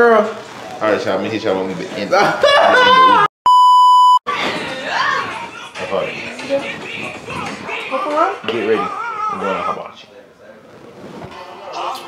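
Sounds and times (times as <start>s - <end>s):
electronic censor bleep: 3.5s - 4.2s.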